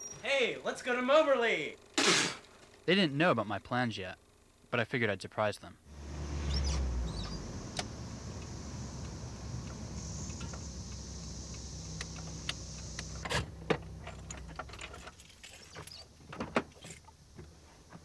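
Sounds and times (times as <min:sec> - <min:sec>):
car engine running: 0:05.9 - 0:15.6
sharp clicks: 0:07.2 - 0:14.9.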